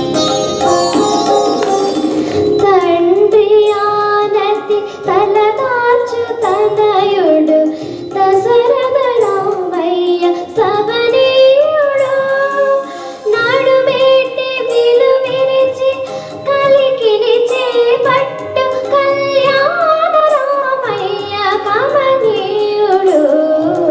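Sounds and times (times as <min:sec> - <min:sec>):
girl singing into a microphone: 0:01.0 - 0:23.9.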